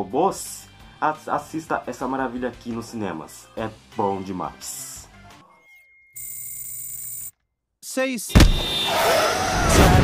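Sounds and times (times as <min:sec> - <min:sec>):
electronic buzz: 0:06.2 - 0:07.3.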